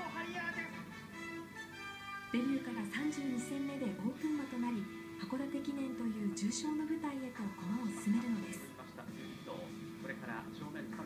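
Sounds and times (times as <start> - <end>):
background music with held note: 0.0 - 11.0.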